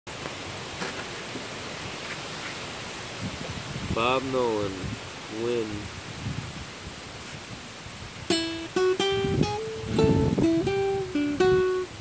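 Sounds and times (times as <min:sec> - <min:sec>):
wind through grass: 0:00.1 - 0:12.0
wind buffeting microphone: 0:02.8 - 0:12.0.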